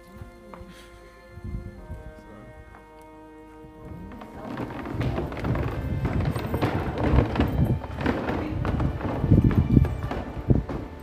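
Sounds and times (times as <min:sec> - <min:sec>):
faint music: 0:00.0 - 0:11.0
footsteps of people walking: 0:00.0 - 0:11.0
handheld camera rumble: 0:02.8 - 0:11.0.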